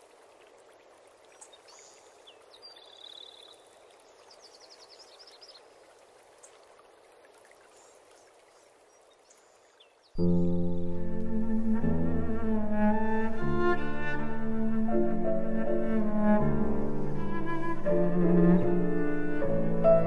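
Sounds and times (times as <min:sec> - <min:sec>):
faint running water: 0:00.0 - 0:20.0.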